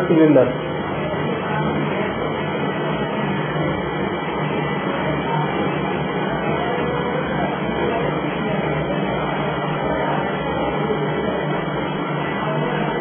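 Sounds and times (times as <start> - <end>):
electric pump humming: 0.0 - 13.0.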